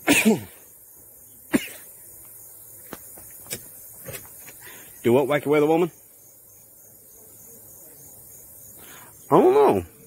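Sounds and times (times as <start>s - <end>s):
man coughing: 0.0s - 0.6s, 1.5s - 1.9s.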